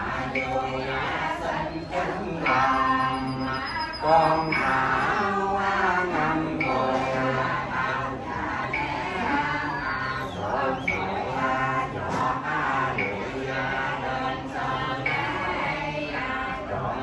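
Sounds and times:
men chanting in unison: 0.0s - 17.0s.

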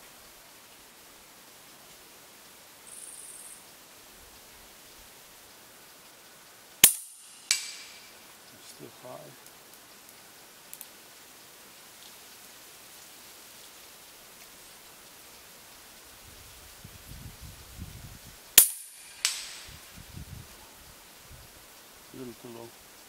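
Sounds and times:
rifle handling bumps: 6.8s - 8.1s, 18.6s - 19.7s
slug striking steel target: 6.8s - 8.1s, 18.6s - 19.7s
air rifle shot crack: 18.6s - 19.8s.

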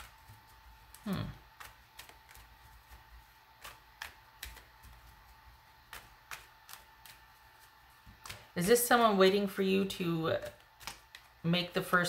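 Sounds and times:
cards clicking and tapping: 0.0s - 8.6s, 10.4s - 11.4s.

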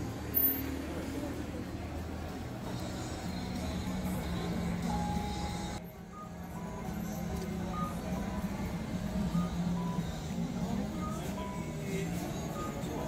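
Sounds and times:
crowd noise: 0.0s - 13.0s
traffic noise: 0.0s - 13.0s
pedestrian crossing signal beeps: 4.8s - 13.0s.

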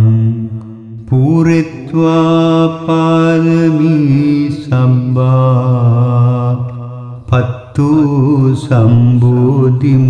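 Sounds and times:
person chanting melodically: 0.0s - 10.0s.

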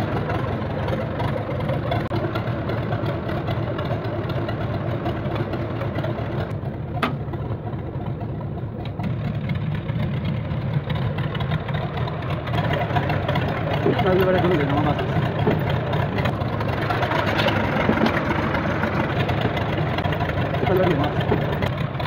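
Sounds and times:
engine idling: 0.0s - 22.0s.

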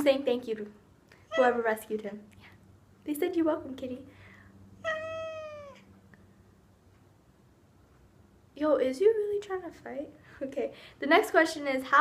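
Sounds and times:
cat meowing: 1.3s - 1.8s, 4.8s - 6.0s.

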